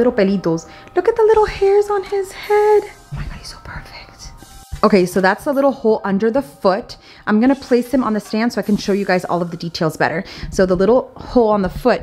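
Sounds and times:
soft background music: 0:00.0 - 0:12.0
woman speaking: 0:00.0 - 0:12.0
faint whispering: 0:03.2 - 0:04.4.

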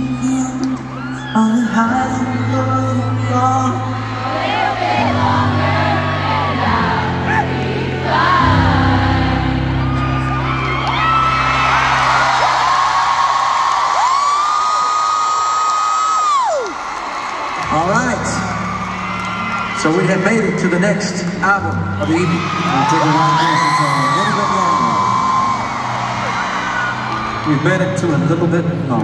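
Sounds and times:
live band with singing: 0:00.0 - 0:09.3
crowd cheering: 0:00.0 - 0:29.0.

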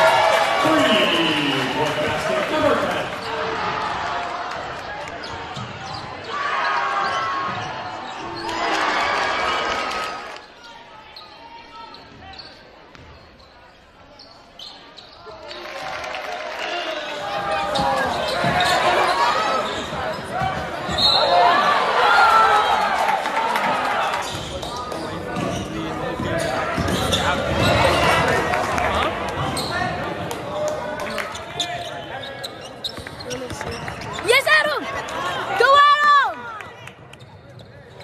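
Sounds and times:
crowd shouting and cheering: 0:00.0 - 0:13.0, 0:15.2 - 0:32.4, 0:33.0 - 0:37.6
shoe squeaks: 0:05.2 - 0:08.6, 0:10.4 - 0:15.6, 0:17.5 - 0:21.4, 0:24.2 - 0:28.0, 0:29.4 - 0:30.0, 0:31.2 - 0:34.3.

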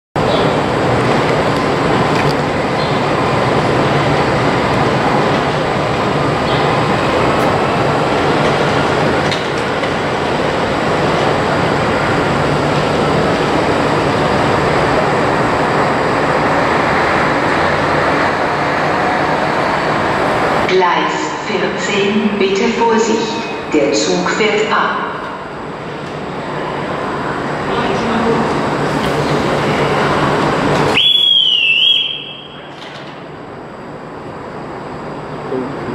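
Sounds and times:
trains rumbling and hissing: 0:00.2 - 0:35.9.

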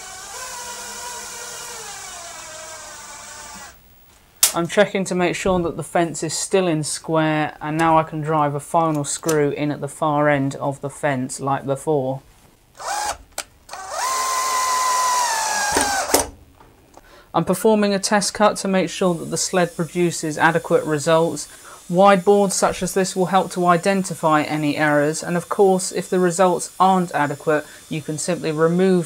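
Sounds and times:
power drill driving screw into wood: 0:00.0 - 0:03.8, 0:12.8 - 0:16.3.

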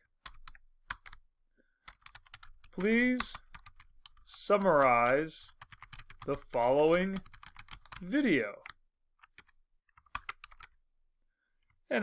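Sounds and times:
computer keyboard keystrokes: 0:00.2 - 0:01.2, 0:01.9 - 0:10.7.

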